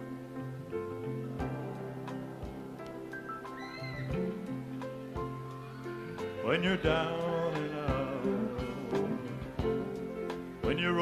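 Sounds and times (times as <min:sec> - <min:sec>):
band and orchestra playing: 0:05.2 - 0:11.0.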